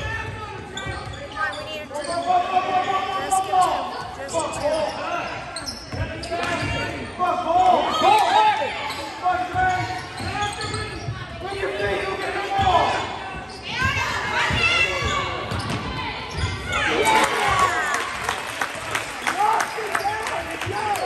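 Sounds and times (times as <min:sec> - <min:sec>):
people shouting and cheering: 0:06.4 - 0:21.0.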